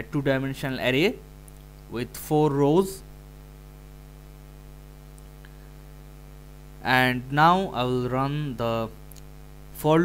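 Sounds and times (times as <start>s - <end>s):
man speaking: 0.0s - 1.3s, 1.9s - 3.1s, 6.8s - 9.0s, 9.8s - 10.0s
electrical mains hum: 0.0s - 10.0s.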